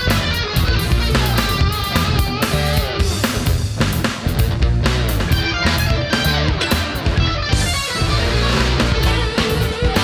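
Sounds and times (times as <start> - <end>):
electric guitar: 0.0 - 10.0
jazz-rock instrumental: 0.0 - 10.0.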